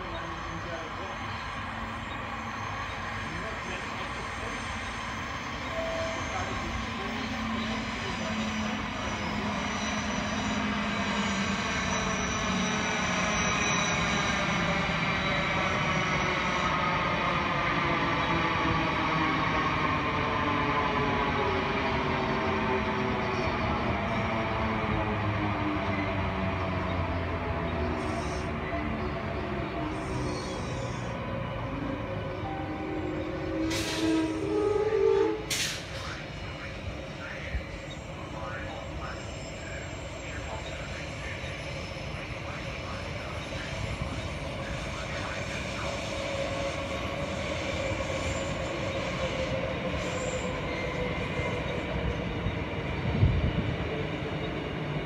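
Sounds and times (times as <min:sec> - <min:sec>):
electric train passing: 0:00.0 - 0:55.0
train whine falling in pitch: 0:32.4 - 0:35.8.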